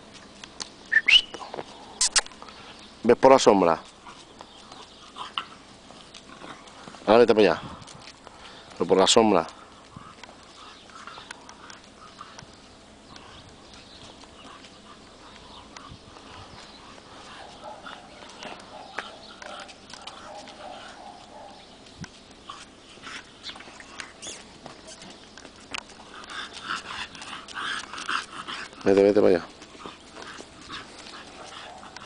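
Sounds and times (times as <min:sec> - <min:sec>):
puppy making faint vocal sounds: 0:14.2 - 0:21.7, 0:29.7 - 0:32.0
footstep clicks on cobblestones: 0:16.6 - 0:22.4.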